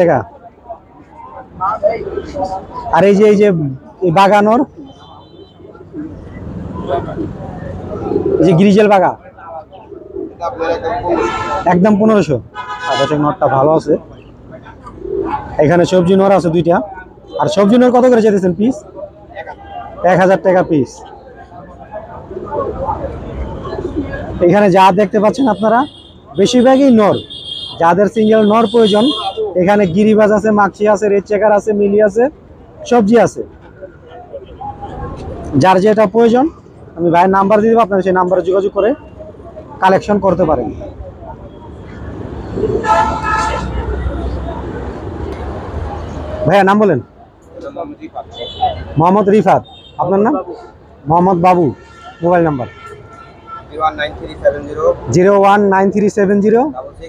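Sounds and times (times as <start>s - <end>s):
men talking: 0.0s - 57.0s
road traffic rumble: 0.0s - 57.0s
pigeons cooing: 5.7s - 8.8s, 9.6s - 11.3s, 14.2s - 15.9s, 22.2s - 24.4s, 42.4s - 44.0s
vehicle horn honking: 12.6s - 13.3s, 25.4s - 29.5s, 42.8s - 44.0s, 51.6s - 53.8s.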